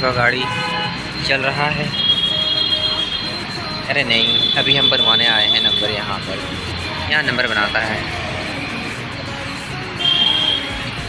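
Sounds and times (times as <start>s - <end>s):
high-pitched two-tone whine: 0.0s - 11.0s.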